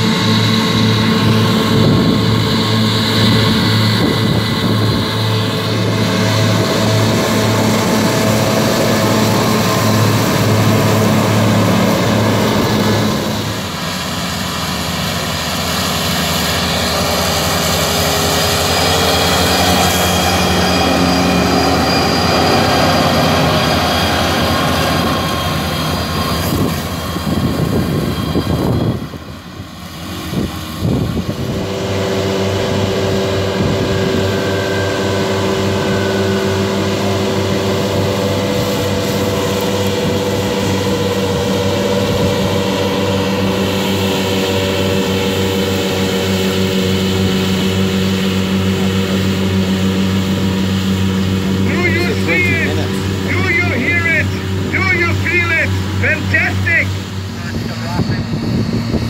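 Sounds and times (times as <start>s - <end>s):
tractor diesel engine under load: 0.0s - 59.0s.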